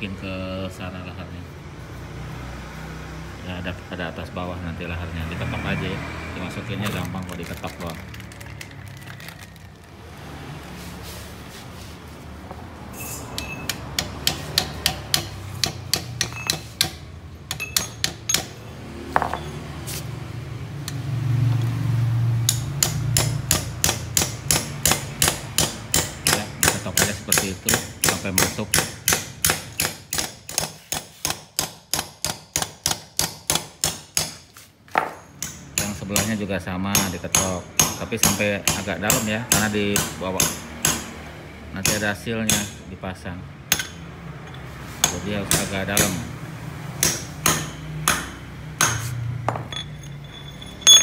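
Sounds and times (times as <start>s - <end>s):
hammer striking metal: 13.0s - 19.7s, 22.4s - 34.4s, 35.0s - 41.2s, 41.8s - 42.8s, 43.7s - 44.1s, 45.0s - 46.3s, 47.0s - 51.0s.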